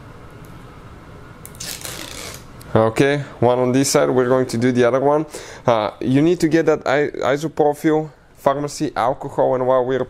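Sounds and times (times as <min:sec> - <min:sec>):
low background hum: 0:00.0 - 0:10.0
film peeled off tape: 0:01.4 - 0:02.5.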